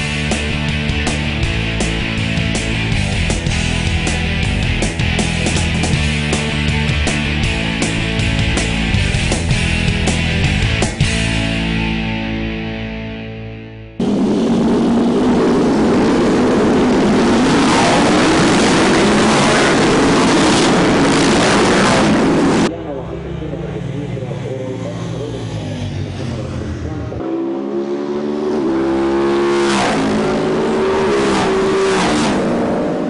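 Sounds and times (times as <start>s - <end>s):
motorcycle revving through gears: 14.0s - 22.7s, 24.6s - 33.0s
motorcycles passing on track: 14.0s - 33.0s
racing motorcycles accelerating: 14.0s - 33.0s.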